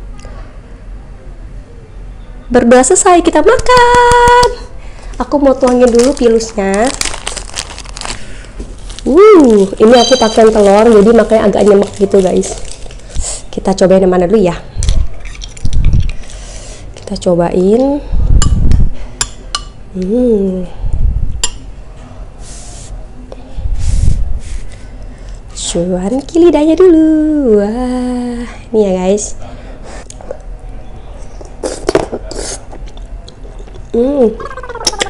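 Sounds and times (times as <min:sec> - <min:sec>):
close chewing of soft soup: 0:29.9 - 0:30.5, 0:31.3 - 0:34.0
wet mouth clicks: 0:29.9 - 0:30.5, 0:31.6 - 0:35.0.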